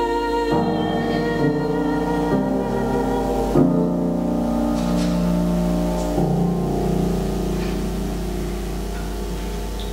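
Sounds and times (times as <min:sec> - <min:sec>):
piano chord ringing: 0:00.0 - 0:09.9.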